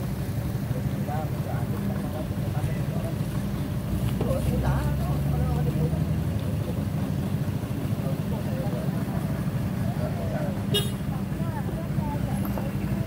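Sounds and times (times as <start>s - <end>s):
engine humming steadily: 0.0s - 13.0s.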